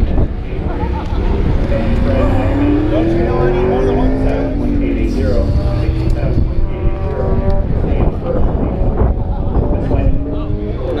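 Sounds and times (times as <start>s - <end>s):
men talking: 0.0s - 11.0s
steady low rumble: 0.0s - 11.0s.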